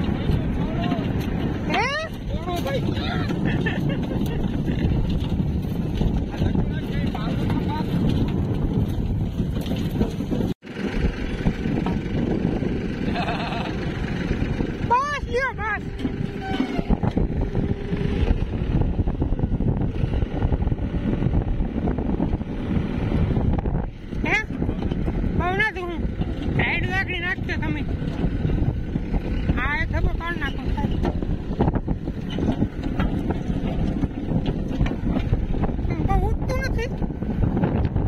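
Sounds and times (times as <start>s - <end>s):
trolley rattling: 0.0s - 19.8s, 24.0s - 38.0s
tractor engine running: 0.0s - 38.0s
wind on microphone: 0.0s - 38.0s.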